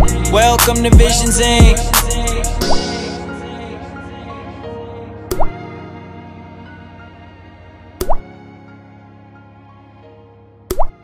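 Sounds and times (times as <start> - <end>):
music: 0.0 - 11.0
water drop plops: 10.7 - 11.0.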